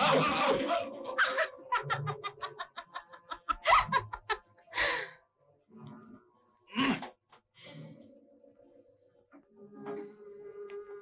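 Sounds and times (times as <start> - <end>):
young woman laughing: 0.0 - 5.1.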